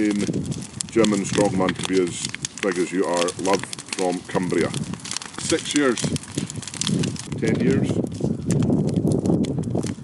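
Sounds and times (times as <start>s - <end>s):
bonfire crackling and popping: 0.0s - 10.0s.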